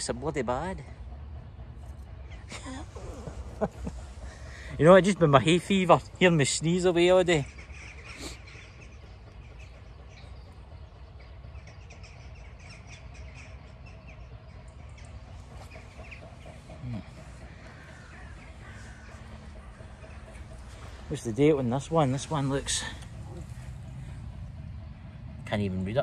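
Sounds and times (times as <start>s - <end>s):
birds chirping and calling: 0.0s - 26.0s
low outdoor rumble: 0.0s - 26.0s.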